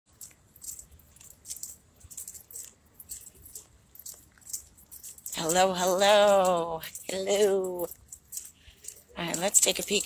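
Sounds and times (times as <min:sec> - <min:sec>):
metallic jingling rattle: 0:00.1 - 0:10.0.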